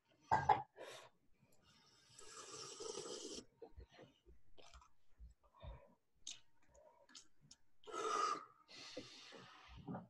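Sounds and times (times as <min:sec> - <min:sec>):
person sucking air through mouth: 0:02.2 - 0:03.5.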